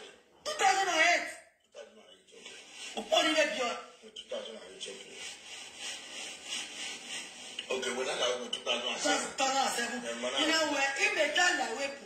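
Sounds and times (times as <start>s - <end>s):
rhythmic scratchy rubbing: 2.3s - 11.9s.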